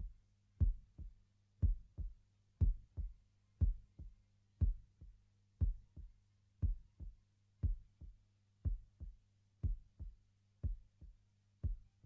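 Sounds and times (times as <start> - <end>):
heartbeat double thump: 0.6 - 1.0, 1.6 - 4.9, 5.6 - 6.0, 6.6 - 7.0, 9.6 - 10.0.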